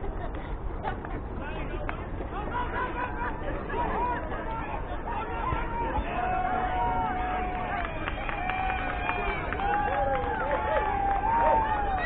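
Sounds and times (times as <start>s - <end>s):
people shouting and chattering: 0.0s - 12.0s.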